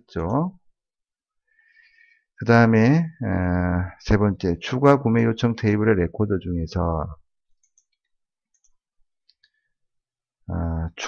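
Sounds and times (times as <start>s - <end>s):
computer mouse clicks: 7.6s - 9.6s.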